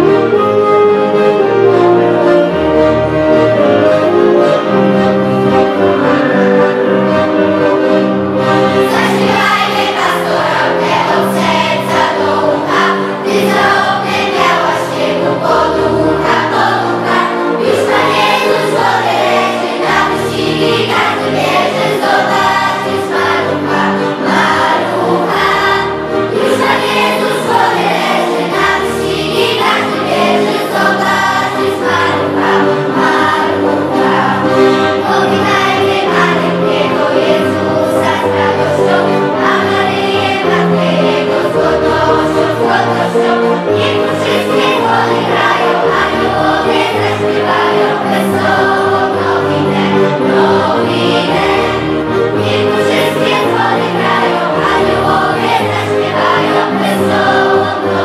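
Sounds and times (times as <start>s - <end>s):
choir singing a carol: 0.0s - 58.0s
low instrumental accompaniment: 0.0s - 58.0s.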